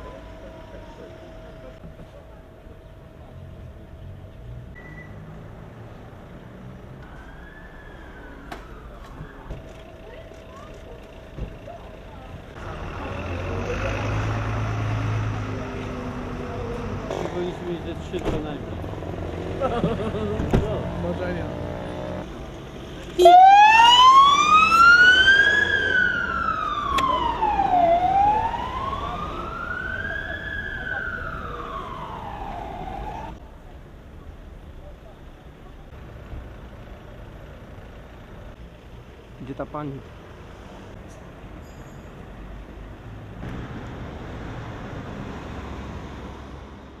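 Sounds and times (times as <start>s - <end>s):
ambulance siren wailing: 7.0s - 9.6s, 23.2s - 33.4s
vehicle driving past: 12.6s - 17.8s.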